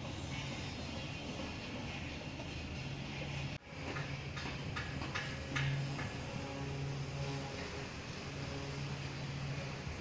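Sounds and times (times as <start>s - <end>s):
urban background hum: 0.0s - 10.0s.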